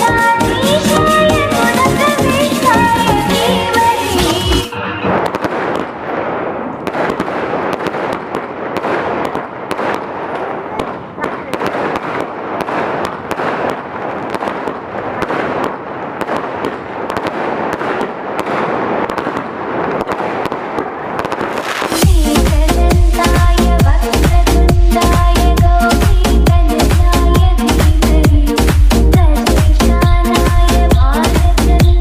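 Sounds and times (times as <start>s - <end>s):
fireworks crackling and popping: 0.0s - 32.0s.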